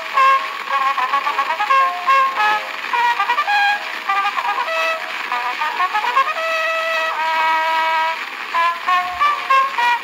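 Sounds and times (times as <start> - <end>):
cornet solo in a polka: 0.0 - 10.0.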